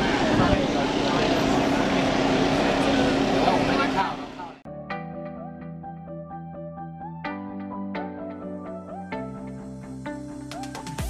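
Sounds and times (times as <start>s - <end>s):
engine drone: 0.0s - 4.7s.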